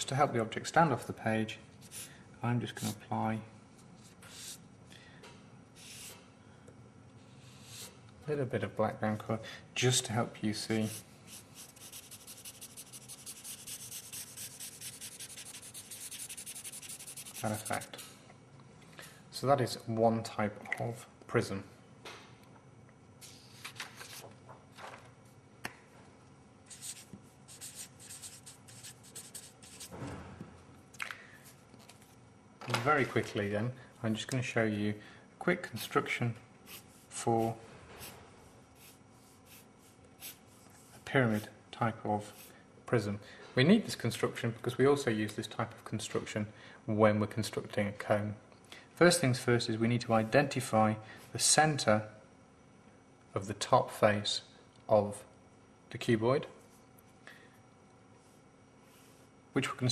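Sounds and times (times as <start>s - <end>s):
marker scribbling on paper: 10.8s - 18.0s, 26.7s - 29.9s, 38.8s - 40.4s.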